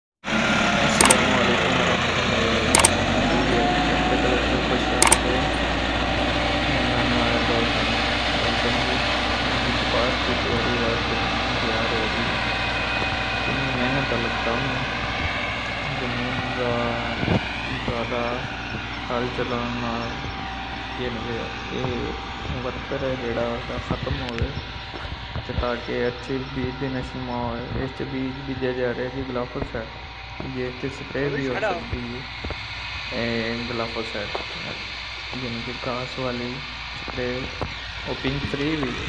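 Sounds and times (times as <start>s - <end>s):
tractor diesel engine under load: 0.3s - 24.6s, 33.0s - 39.0s
sharp clicks: 0.9s - 1.3s, 2.7s - 3.0s, 5.0s - 5.4s.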